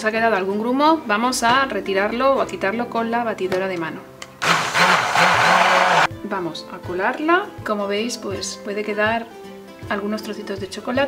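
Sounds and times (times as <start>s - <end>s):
hand blender motor running: 4.4s - 6.1s.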